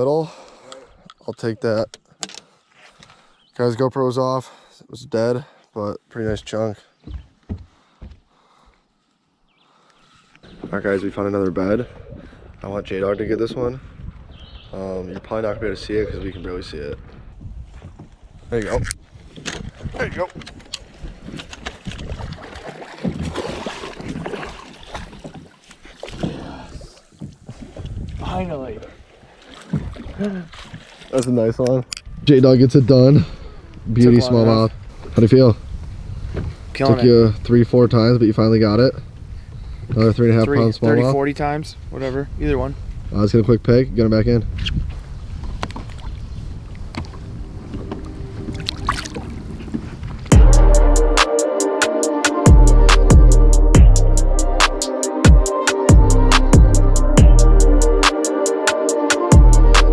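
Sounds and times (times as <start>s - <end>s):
wind rumbling on microphone: 11.7s - 24.3s, 26.2s - 29.1s, 31.9s - 50.4s
loud music with heavy bass: 50.3s - 59.9s.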